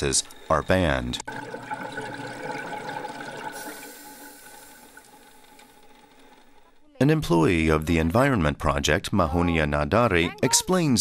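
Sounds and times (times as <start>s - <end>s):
rushing water: 1.3s - 6.6s.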